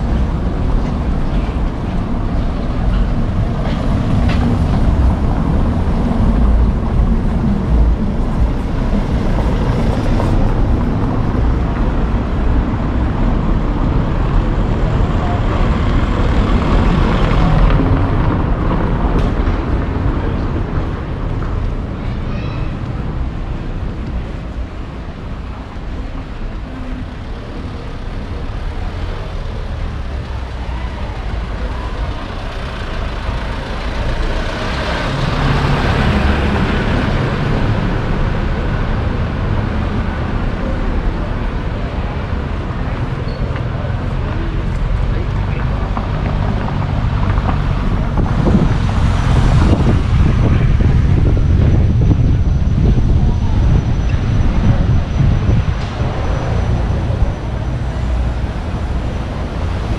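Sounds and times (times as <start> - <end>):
low street rumble: 0.0 - 59.9
street hubbub: 0.0 - 59.9.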